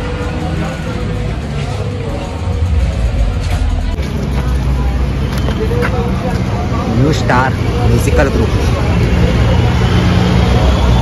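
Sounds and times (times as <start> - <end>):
background voices: 0.0 - 6.9
rumble of passing vehicles: 0.0 - 11.0.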